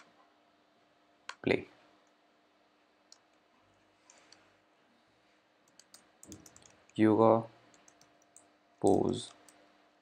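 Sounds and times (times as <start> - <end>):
computer mouse and keyboard clicks: 5.6 - 7.0, 7.7 - 9.6.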